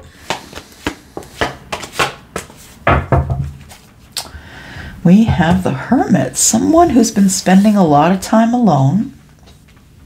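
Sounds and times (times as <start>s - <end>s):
cards shuffling and clicking: 0.2s - 2.8s
loud knock: 2.9s - 3.6s.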